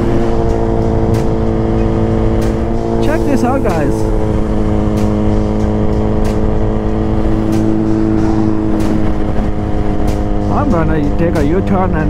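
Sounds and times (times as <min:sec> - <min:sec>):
motorcycle engine cruising: 0:00.0 - 0:12.0
wind noise: 0:05.7 - 0:10.4.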